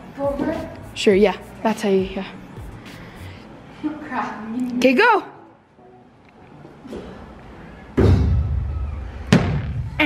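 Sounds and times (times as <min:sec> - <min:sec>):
loud boom with deep rumble: 0:08.0 - 0:10.0.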